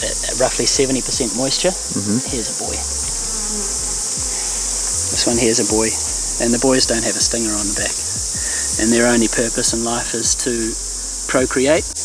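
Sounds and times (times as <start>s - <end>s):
bees buzzing: 0.0s - 12.0s
high-pitched hiss: 0.0s - 12.0s.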